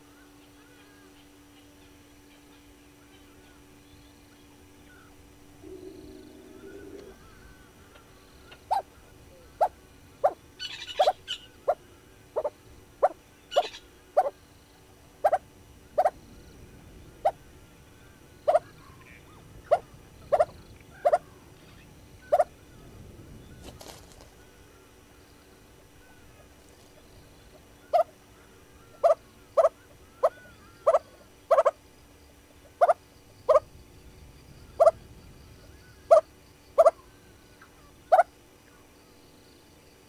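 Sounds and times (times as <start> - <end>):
bird twittering: 0.1 - 16.2, 17.1 - 24.4, 25.4 - 31.8, 32.6 - 33.7, 34.6 - 38.8.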